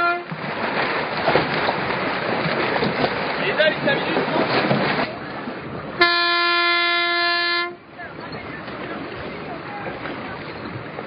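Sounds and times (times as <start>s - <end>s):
signal horn blast: 0.0s - 0.3s, 6.0s - 7.8s
water noise: 0.0s - 11.0s
wind: 0.0s - 11.0s.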